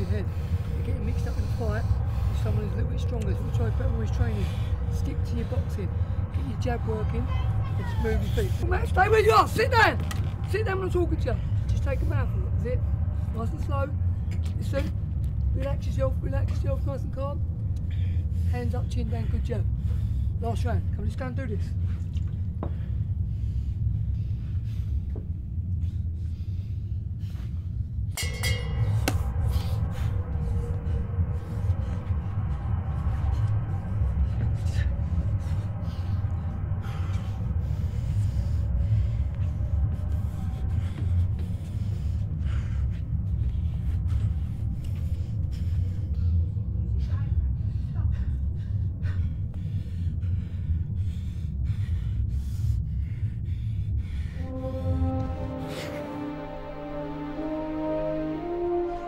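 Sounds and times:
dramatic film music: 0.0 - 59.0
low rumbling drone: 0.0 - 59.0
sustained higher tones: 54.4 - 59.0.

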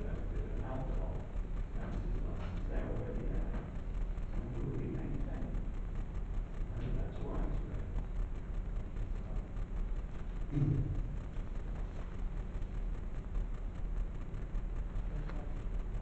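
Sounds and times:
low room rumble: 0.0 - 16.0.

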